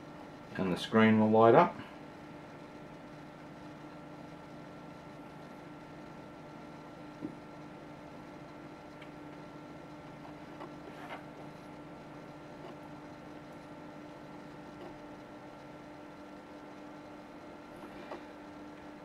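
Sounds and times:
steady electrical hum: 0.0s - 19.0s.

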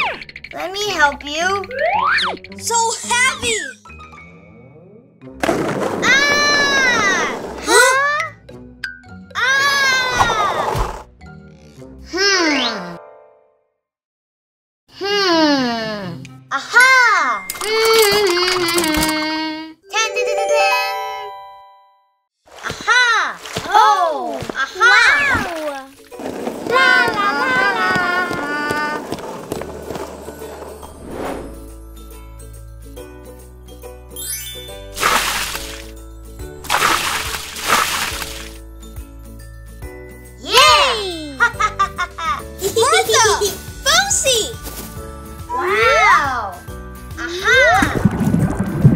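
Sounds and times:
light background music: 0.0s - 5.5s, 19.7s - 21.8s, 28.8s - 48.6s
sparkly shimmer note: 34.2s - 35.0s
cartoon water splash: 34.3s - 35.9s, 36.6s - 38.6s, 47.7s - 48.9s
water gushing: 34.9s - 35.9s, 36.6s - 38.6s, 47.8s - 48.9s.

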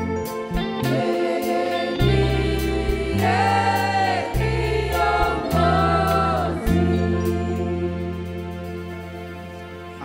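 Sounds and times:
instrumental backing with bass: 0.0s - 10.0s
choir singing gospel song: 0.4s - 9.4s.

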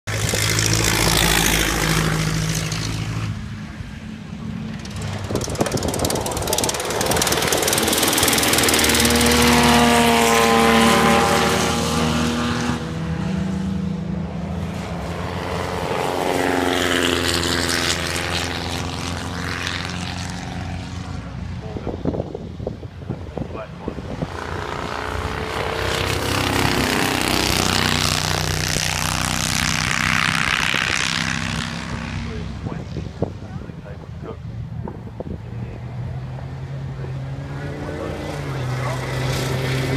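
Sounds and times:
racing cars passing: 0.1s - 39.9s.

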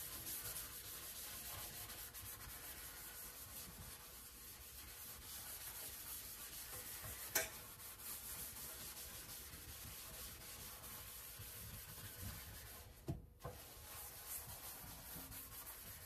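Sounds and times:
scrubbing steel sink: 0.0s - 16.0s.

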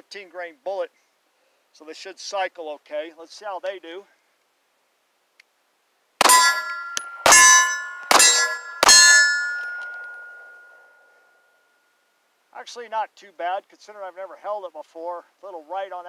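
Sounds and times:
pistol shots with ringing: 6.2s - 10.8s.

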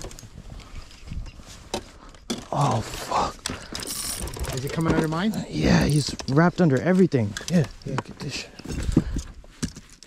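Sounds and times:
fishing gear bumps and knocks: 3.4s - 10.0s.

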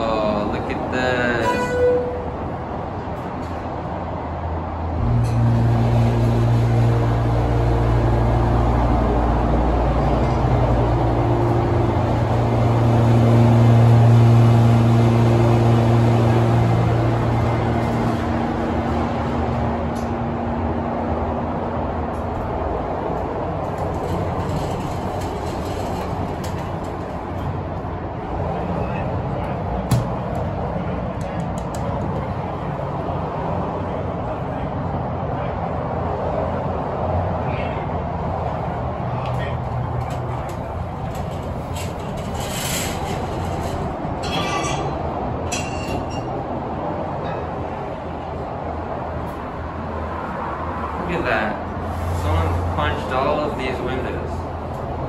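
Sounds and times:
freeway traffic noise: 0.0s - 55.0s
elevator pump motor hum: 4.9s - 21.3s.

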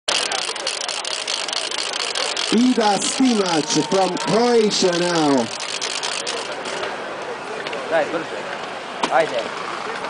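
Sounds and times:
distant voices calling: 0.5s - 7.5s.

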